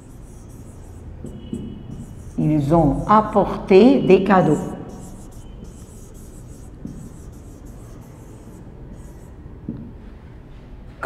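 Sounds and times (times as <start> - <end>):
pen scratching on whiteboard: 0.0 - 9.4.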